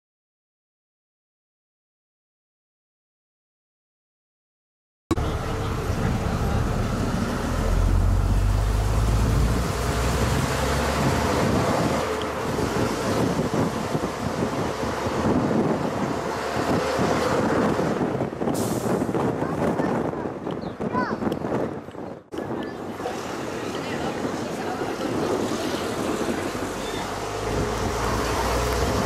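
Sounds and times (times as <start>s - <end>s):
bus engine rumble: 5.1s - 29.0s
wind buffeting microphone: 5.2s - 29.0s.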